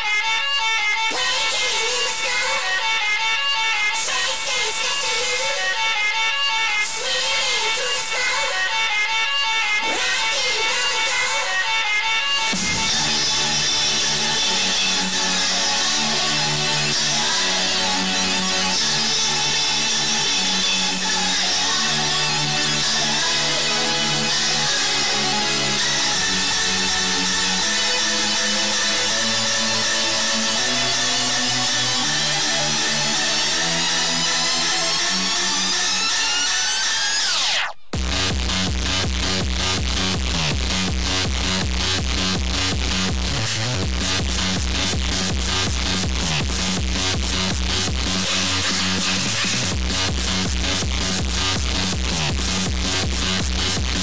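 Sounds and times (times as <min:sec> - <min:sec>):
electronic dance music: 0:00.0 - 0:54.0.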